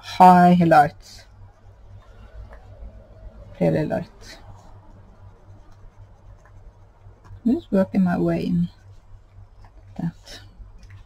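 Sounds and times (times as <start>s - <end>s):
low steady hum: 0.0s - 11.0s
pencil scratching on paper: 3.6s - 9.9s.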